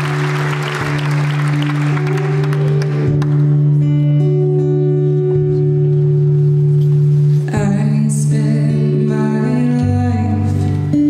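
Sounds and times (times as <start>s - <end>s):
audience applause: 0.0s - 3.4s
acoustic guitar playing: 0.0s - 11.0s.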